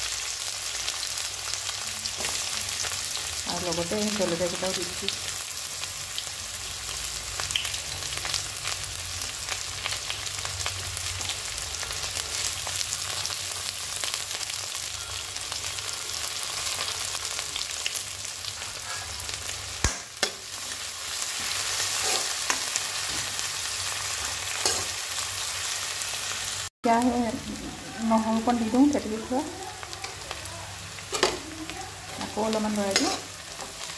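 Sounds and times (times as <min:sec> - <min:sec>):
onions sizzling in hot oil: 0:00.0 - 0:33.9.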